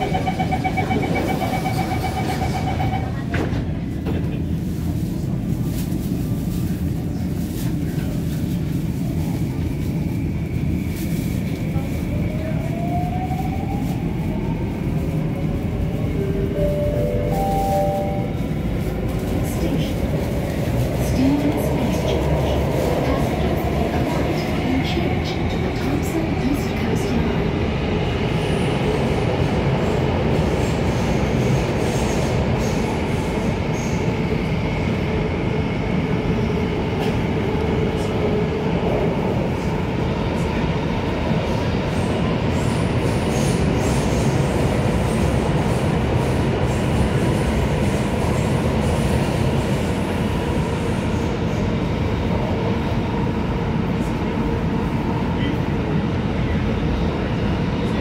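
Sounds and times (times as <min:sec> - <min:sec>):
metro train wheels rumbling: 0:00.0 - 0:58.0.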